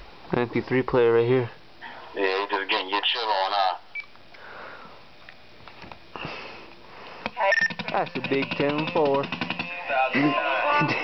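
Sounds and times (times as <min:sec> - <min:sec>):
person speaking: 0:07.4 - 0:11.0.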